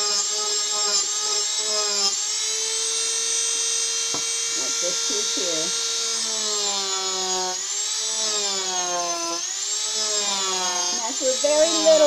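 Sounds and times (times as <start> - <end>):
burr rasping wood: 0.0 - 12.0
rotary tool whine: 0.0 - 12.0.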